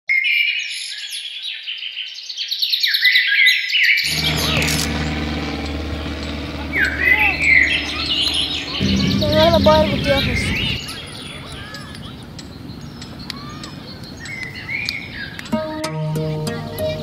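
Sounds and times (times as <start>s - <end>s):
birds chirping: 4.0s - 15.6s
low outdoor hum: 4.1s - 15.2s.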